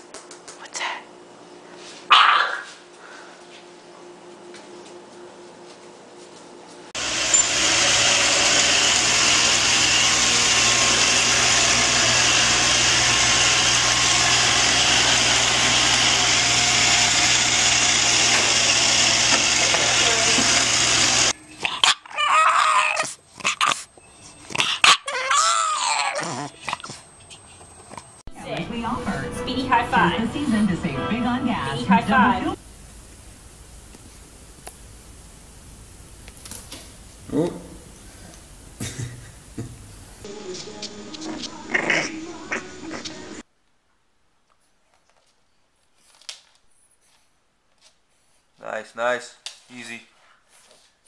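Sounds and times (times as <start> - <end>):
robot vacuum cleaner whirring: 7.0 - 21.4
puppy vocal calls: 21.5 - 27.6.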